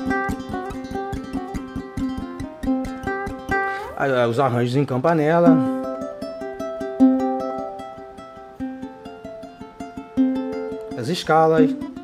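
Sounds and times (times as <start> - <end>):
ukulele fingerpicking melody: 0.0 - 12.0.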